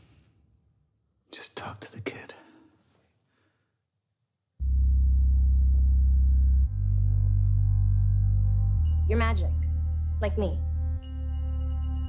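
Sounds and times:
person whispering: 1.3s - 2.7s.

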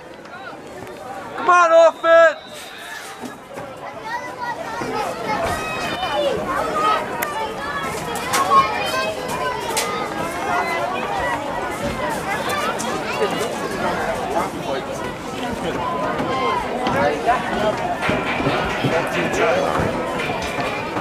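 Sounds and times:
overlapping voices calling out: 0.0s - 21.0s.

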